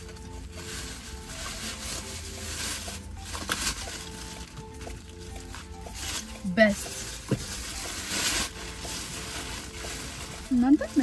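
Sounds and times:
rustle of handling: 0.0 - 11.0.

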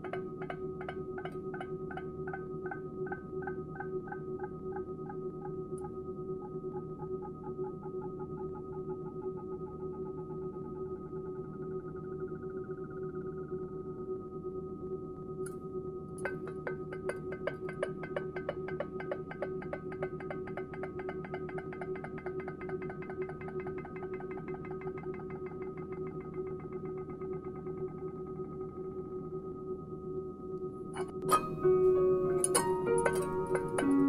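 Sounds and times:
sustained drone: 0.0 - 34.0
rapid ticking notes: 31.2 - 34.0.

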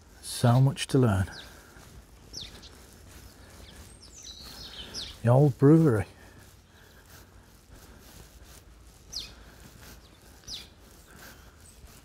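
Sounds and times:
faint outdoor background: 0.0 - 12.0.

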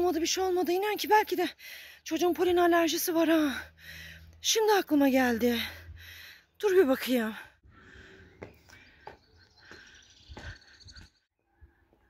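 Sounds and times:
faint bird chirping: 7.7 - 12.0
footsteps on stone stairs: 8.4 - 11.1.

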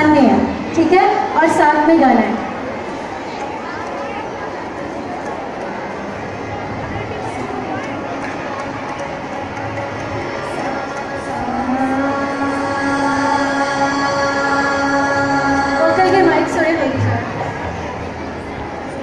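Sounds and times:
children and audience chatter: 0.0 - 19.0.

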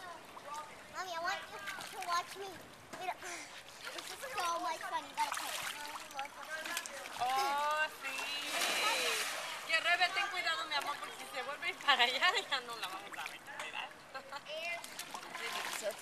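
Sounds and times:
people's voices: 0.0 - 16.0
pool water splashing: 0.0 - 16.0.

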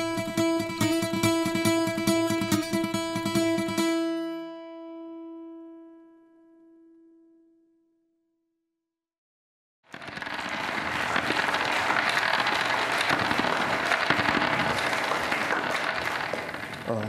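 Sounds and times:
audience applauding: 9.9 - 17.0.

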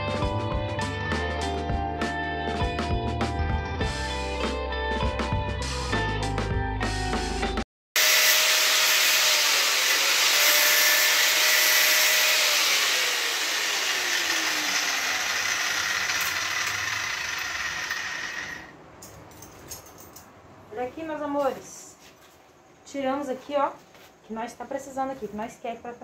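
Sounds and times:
angle grinder cutting steel: 8.0 - 18.8.

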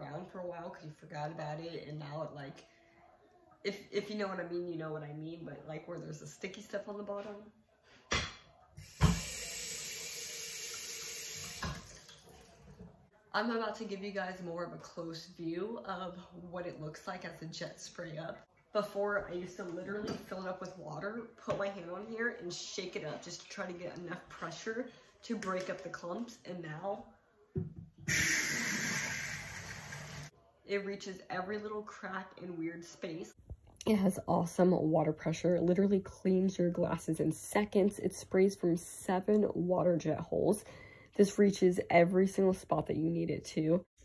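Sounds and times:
water spray hissing: 28.1 - 30.3.

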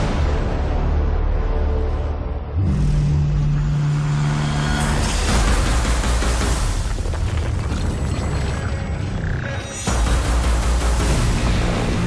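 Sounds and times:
loud low drone: 0.0 - 6.4.

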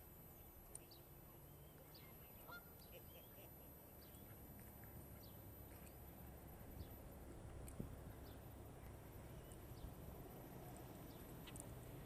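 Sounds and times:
waterbird call: 2.3 - 3.4.

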